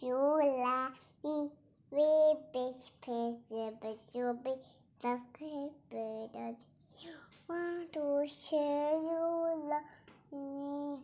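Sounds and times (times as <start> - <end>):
toddler girl singing: 0.0 - 11.0.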